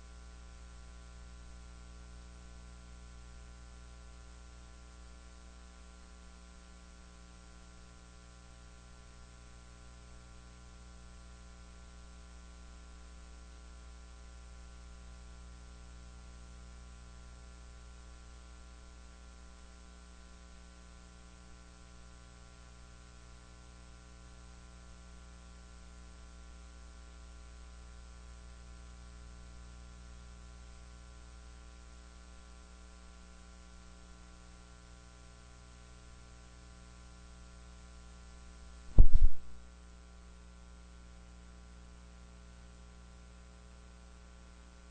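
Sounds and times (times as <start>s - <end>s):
electrical mains hum: 0.0s - 44.9s
loud thump: 38.9s - 39.6s.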